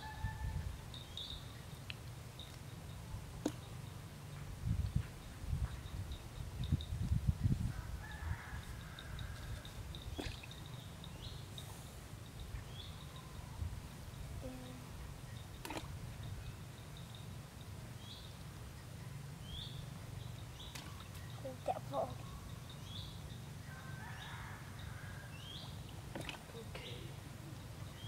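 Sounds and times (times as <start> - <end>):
birds chirping: 8.8 - 28.0.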